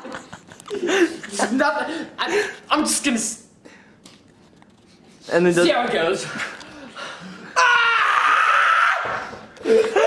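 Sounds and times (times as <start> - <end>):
person squealing: 7.5 - 10.0.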